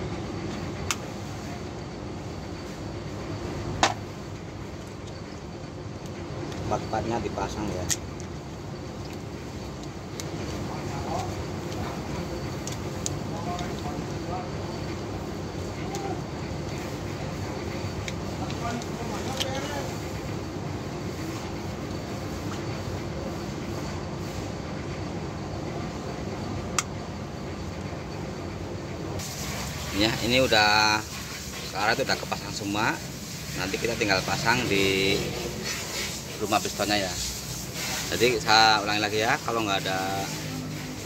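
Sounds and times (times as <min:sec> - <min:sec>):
vehicle traffic rumble: 0:00.0 - 0:41.0.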